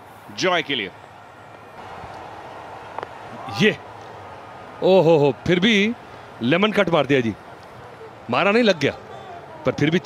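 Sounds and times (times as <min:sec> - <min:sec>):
stadium crowd voices: 0:00.0 - 0:10.0.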